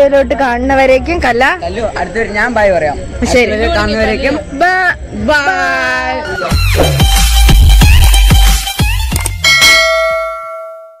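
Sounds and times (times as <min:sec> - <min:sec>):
electronic beat thumps: 0:06.5 - 0:09.2
bright bell ding: 0:09.4 - 0:11.0.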